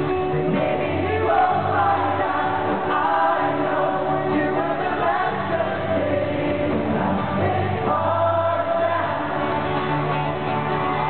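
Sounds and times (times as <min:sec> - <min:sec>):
lead vocal singing: 0:00.0 - 0:10.4
acoustic guitars strumming: 0:00.0 - 0:11.0
crowd singing along: 0:00.0 - 0:11.0.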